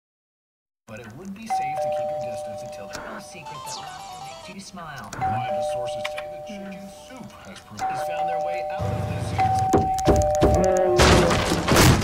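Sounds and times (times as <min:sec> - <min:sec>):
voices: 0:00.9 - 0:09.7
music: 0:03.4 - 0:04.6
two-tone ding-dong chime: 0:05.2 - 0:06.9, 0:07.8 - 0:11.0.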